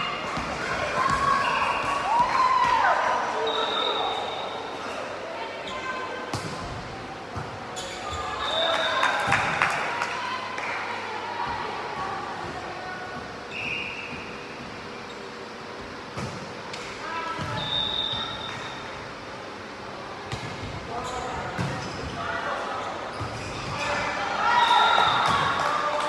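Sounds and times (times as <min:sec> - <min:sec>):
shoe squeaks: 0:07.7 - 0:08.6, 0:13.5 - 0:15.4, 0:21.0 - 0:22.2, 0:22.8 - 0:24.0.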